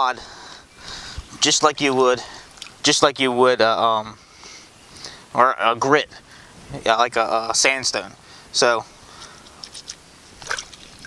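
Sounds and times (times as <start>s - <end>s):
faint water hiss: 0.2s - 11.0s
hands splashing in water: 9.5s - 11.0s.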